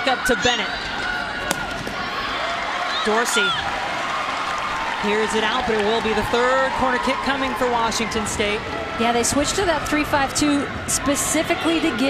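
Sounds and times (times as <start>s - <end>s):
stadium crowd noise: 0.0s - 12.0s
ball being kicked: 1.4s - 2.1s.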